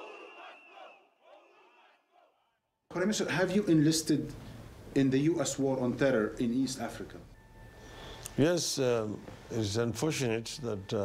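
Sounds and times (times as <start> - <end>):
large crowd shouting: 0.0 - 2.3.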